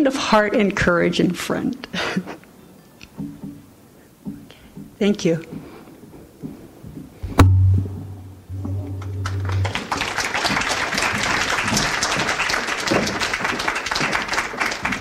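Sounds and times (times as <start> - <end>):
low electrical hum: 7.2 - 10.6
sharp thump: 7.3 - 9.9
audience applauding: 9.0 - 15.0.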